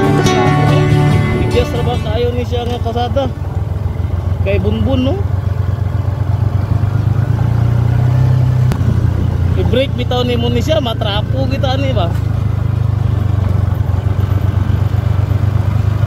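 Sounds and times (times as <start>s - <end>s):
vehicle engine running: 0.0s - 16.0s.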